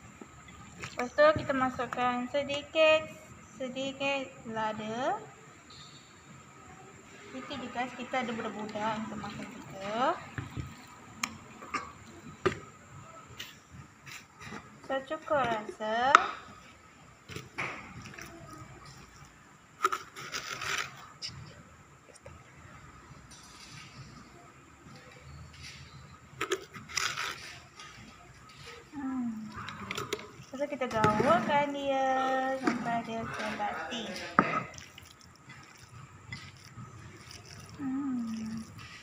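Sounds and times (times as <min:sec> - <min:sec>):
hands mixing meat filling: 0:31.8 - 0:39.0.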